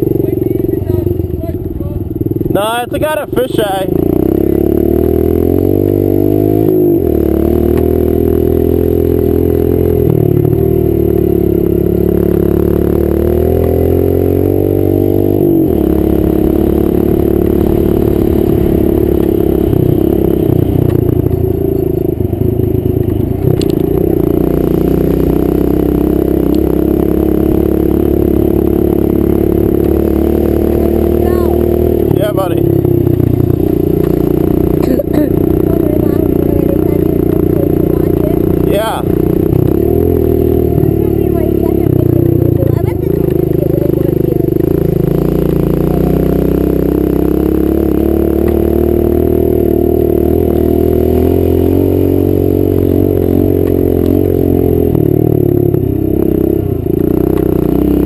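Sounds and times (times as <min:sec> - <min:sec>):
motorcycle engine revving: 0:00.0 - 0:58.0.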